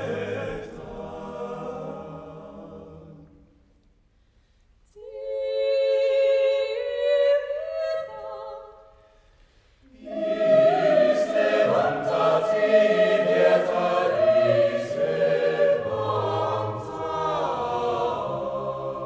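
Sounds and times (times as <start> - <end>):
mixed choir singing a cappella: 0.0 - 3.7, 5.0 - 8.8, 9.9 - 19.0.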